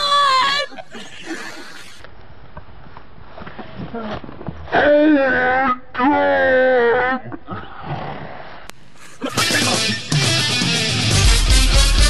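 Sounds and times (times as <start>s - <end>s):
heavy rock music: 9.3s - 12.0s.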